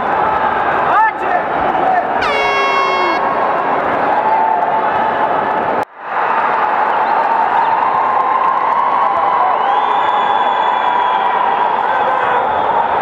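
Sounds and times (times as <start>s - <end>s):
crowd cheering and shouting: 0.0s - 5.6s
high tone: 2.2s - 3.4s.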